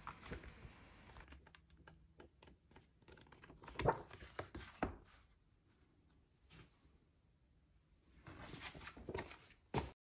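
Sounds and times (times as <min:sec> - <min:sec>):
pages flipping: 0:03.0 - 0:05.2
paper rustling: 0:03.2 - 0:05.3.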